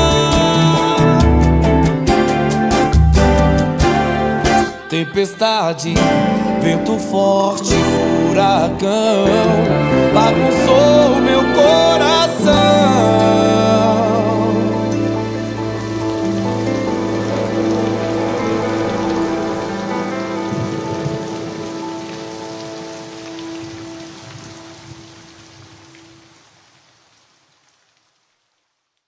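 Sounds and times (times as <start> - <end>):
bass: 0.0 - 4.8, 7.7 - 21.0
sustained ballad chord: 0.0 - 24.1
rain sound effect: 0.0 - 29.0.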